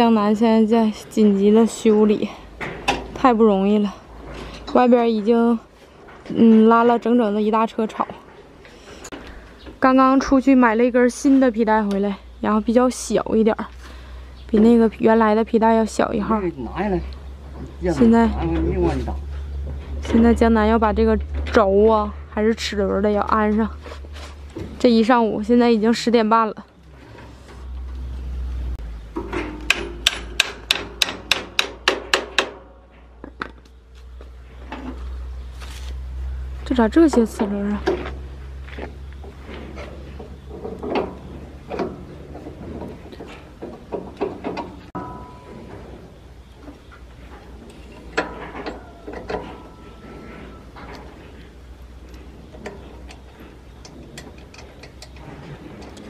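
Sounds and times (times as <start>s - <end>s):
low rumble: 14.9s - 26.2s.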